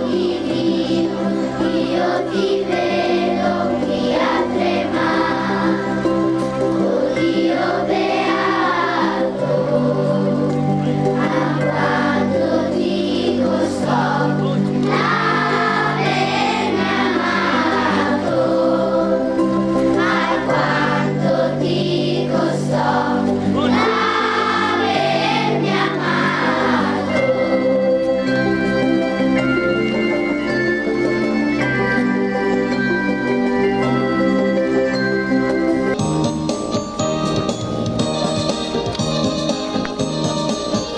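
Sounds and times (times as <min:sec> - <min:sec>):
children's choir singing: 0:00.0 - 0:29.4
instrumental accompaniment: 0:00.0 - 0:40.9.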